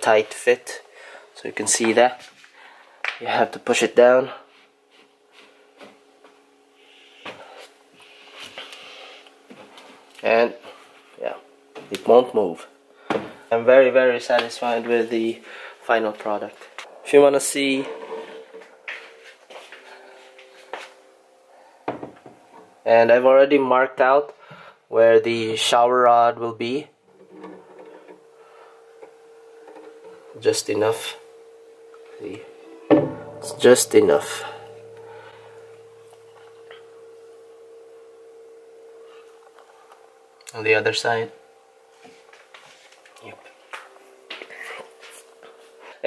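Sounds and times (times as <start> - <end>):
faint steady hum: 0.0 - 46.0.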